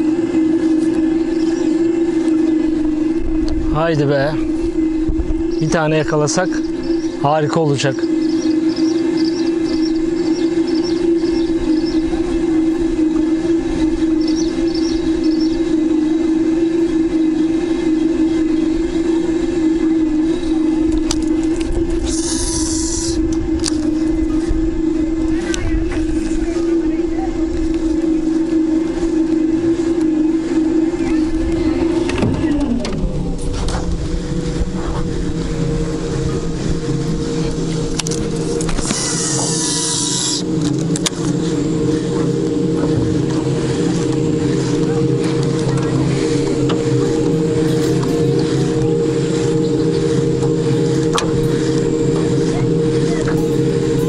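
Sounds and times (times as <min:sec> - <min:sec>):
outboard motor running: 0:00.0 - 0:54.0.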